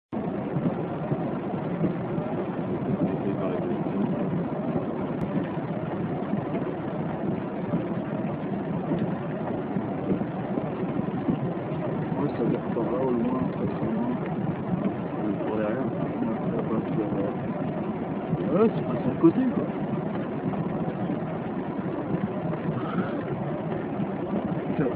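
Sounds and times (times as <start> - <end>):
low rumbling noise: 0.1 - 24.9.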